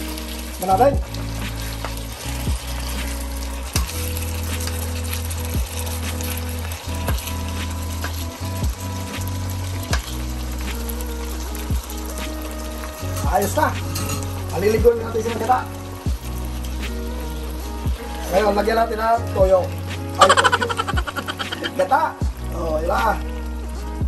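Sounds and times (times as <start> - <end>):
background music with low notes: 0.0 - 24.0
duck sizzling in a pan: 0.0 - 24.0
metal spoon knocking and scraping pan: 13.1 - 14.4.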